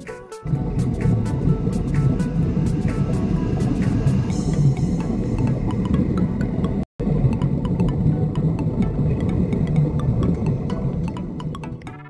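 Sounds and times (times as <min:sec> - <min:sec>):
underwater air bubbling: 0:00.5 - 0:11.9.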